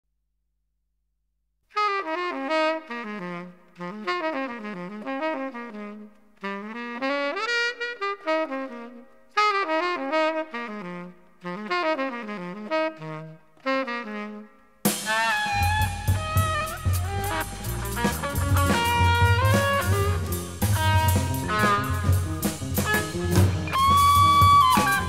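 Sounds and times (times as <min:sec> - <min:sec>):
jazz saxophone melody: 0:01.7 - 0:25.0.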